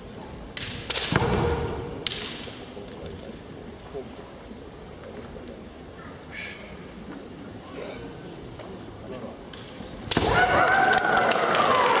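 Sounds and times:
bamboo swords cracking: 0.5 - 2.6, 9.5 - 10.6.

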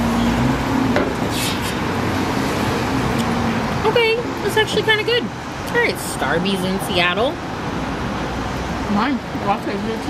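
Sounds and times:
car road noise: 0.0 - 10.0.

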